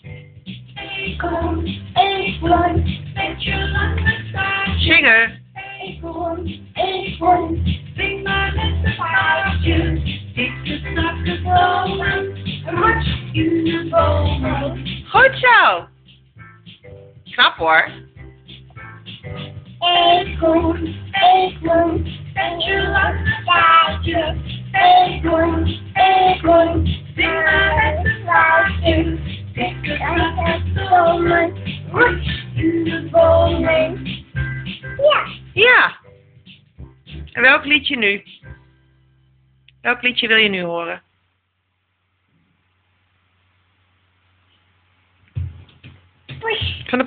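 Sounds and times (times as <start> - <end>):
child singing: 0.8 - 4.8, 5.6 - 10.0, 10.8 - 14.8, 19.8 - 34.0.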